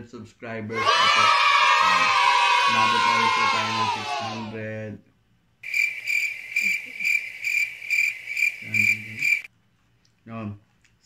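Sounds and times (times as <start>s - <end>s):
crickets chirping: 5.6s - 9.5s.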